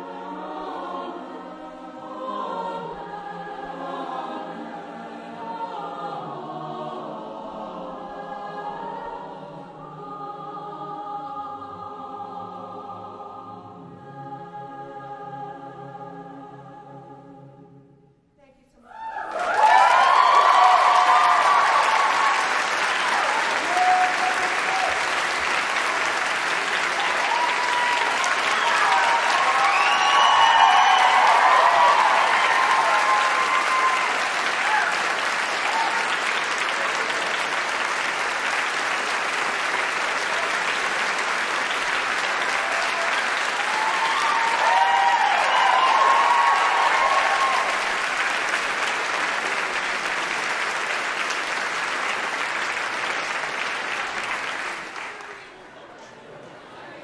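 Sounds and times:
cheering voices: 18.8s - 57.0s
audience applauding: 19.0s - 55.8s.

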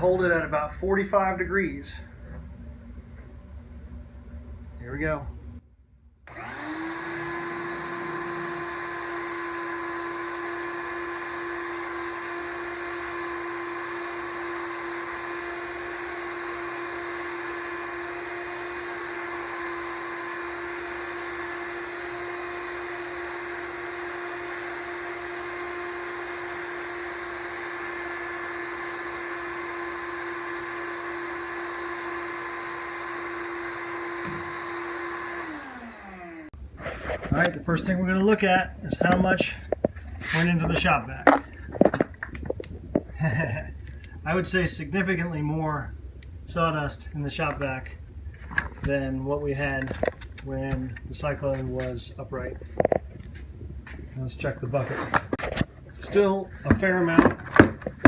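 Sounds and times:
shop vac running: 6.3s - 42.0s.

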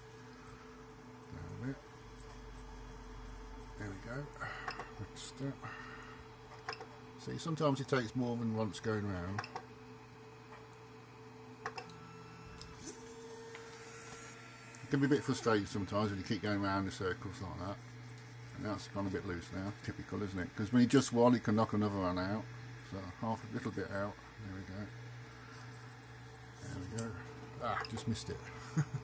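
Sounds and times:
printer low hum: 0.0s - 29.0s
man speaking: 14.9s - 17.8s, 26.6s - 28.5s.

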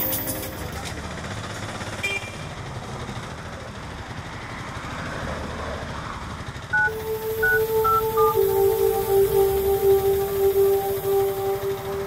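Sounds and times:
music with held tones: 0.0s - 1.0s, 6.8s - 12.0s
road noise: 0.0s - 12.0s
auto-rickshaw engine rumble: 0.2s - 6.7s.

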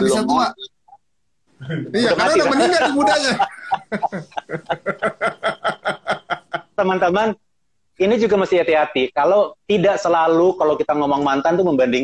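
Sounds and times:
man speaking: 0.0s - 0.7s, 1.6s - 7.4s
man laughing: 2.0s - 6.8s.

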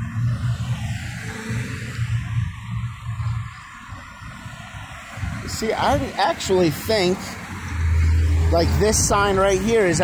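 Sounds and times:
low traffic hum: 0.0s - 10.0s
road noise hiss: 0.0s - 10.0s.

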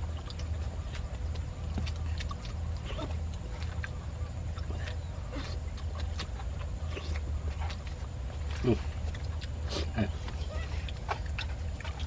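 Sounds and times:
monkey grunting calls: 8.5s - 12.0s.

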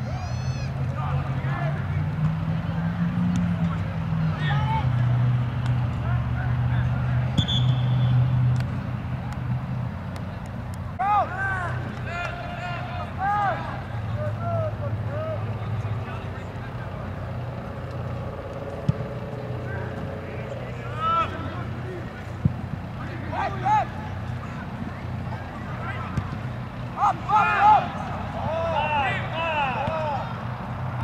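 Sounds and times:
players shouting: 0.0s - 1.9s, 4.2s - 8.2s, 10.9s - 30.6s
low engine hum: 0.0s - 31.0s.

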